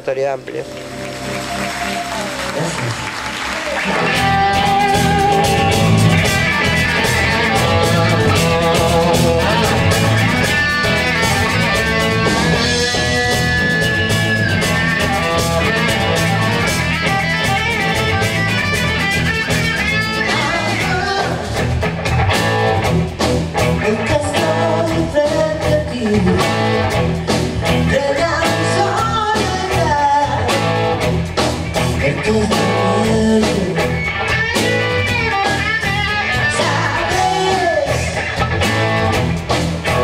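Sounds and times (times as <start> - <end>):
bass guitar: 0.0 - 40.0
drums: 0.0 - 40.0
electric guitars: 0.0 - 40.0
woman singing: 20.3 - 21.5, 23.8 - 26.6, 27.8 - 30.6, 32.0 - 33.9, 36.4 - 38.2.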